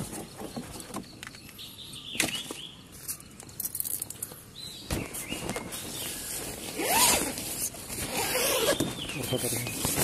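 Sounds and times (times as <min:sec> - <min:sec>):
zipper being pulled: 0:06.7 - 0:08.8.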